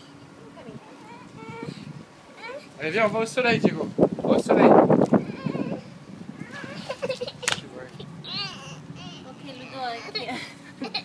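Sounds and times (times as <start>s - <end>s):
toddler fussing: 0.9s - 2.8s, 5.2s - 11.0s.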